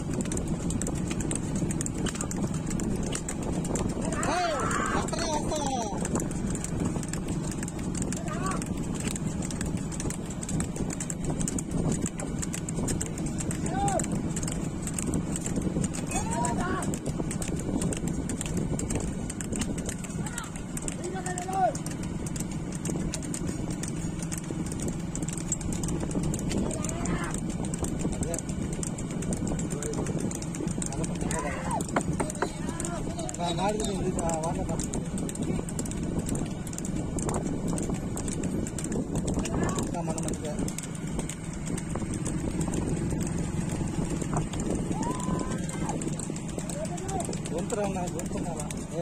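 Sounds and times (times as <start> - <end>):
hooves clattering on pavement: 0.0 - 49.0
person shouting: 4.1 - 5.6, 44.9 - 45.9.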